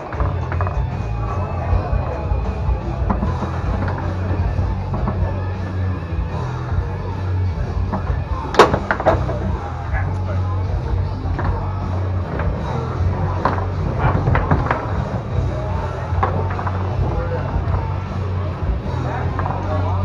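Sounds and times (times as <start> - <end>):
foosball clacking: 0.0 - 5.8, 7.6 - 9.6, 11.2 - 20.0
background music with bass: 0.0 - 20.0.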